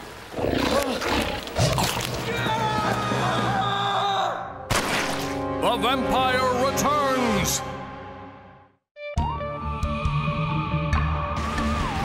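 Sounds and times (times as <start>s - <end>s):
monster growling roar: 0.3s - 2.1s.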